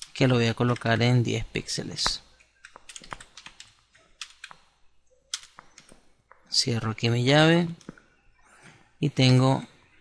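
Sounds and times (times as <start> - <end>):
computer keyboard keystrokes: 2.6 - 4.6, 5.3 - 6.0.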